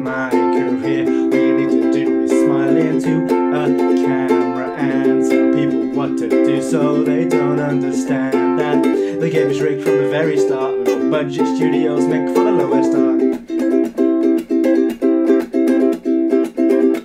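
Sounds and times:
man singing: 0.0 - 13.7
ukulele strumming: 0.0 - 17.0.

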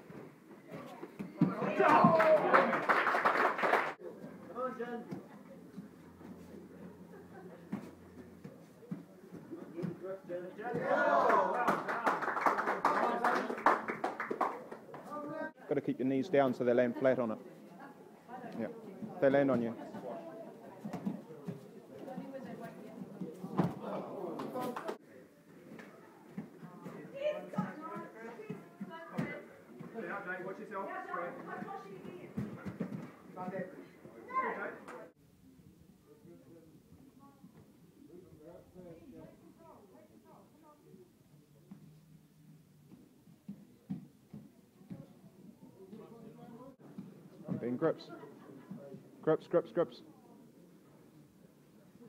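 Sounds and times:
sharp claps and slaps: 11.2 - 15.1.

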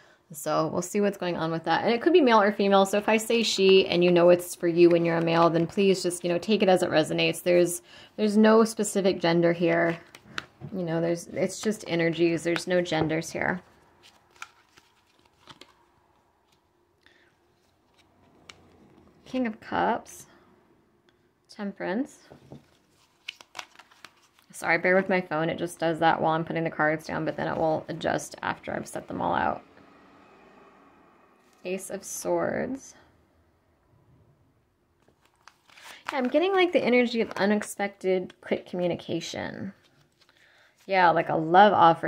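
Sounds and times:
cards clicking and rustling: 14.0 - 16.6, 22.5 - 24.5, 35.0 - 37.7.

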